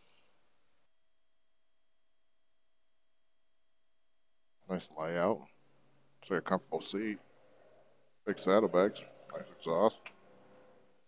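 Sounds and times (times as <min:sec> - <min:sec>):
faint steady electronic tones: 0:00.0 - 0:11.0.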